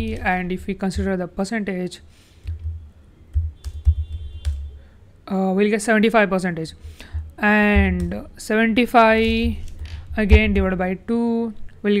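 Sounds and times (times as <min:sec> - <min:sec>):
laptop keyboard clicks: 0:02.4 - 0:04.7
dull low thumps: 0:02.5 - 0:04.8, 0:06.8 - 0:08.4, 0:09.2 - 0:10.8.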